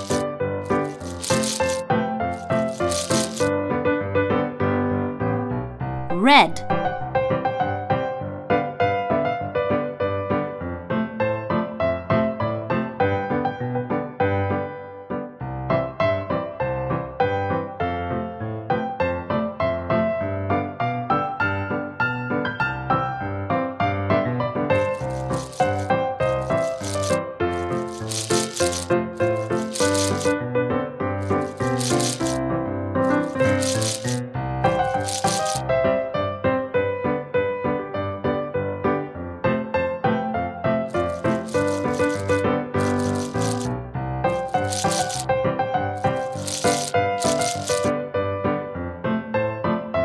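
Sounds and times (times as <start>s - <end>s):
candy rattling and clattering: 0.0s - 1.8s, 2.4s - 3.5s, 24.8s - 30.4s, 31.2s - 32.4s, 33.1s - 35.6s, 40.9s - 43.7s, 44.4s - 45.3s, 46.0s - 47.9s.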